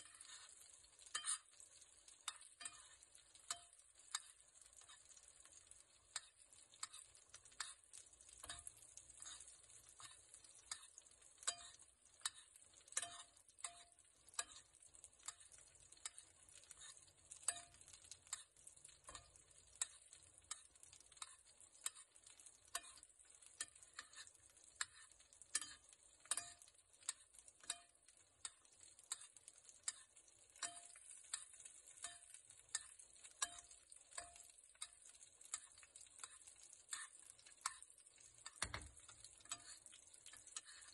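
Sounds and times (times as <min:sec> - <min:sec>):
metal spoon clinking on pan: 0:00.0 - 0:40.9
steak sizzling in a pan: 0:00.0 - 0:40.9.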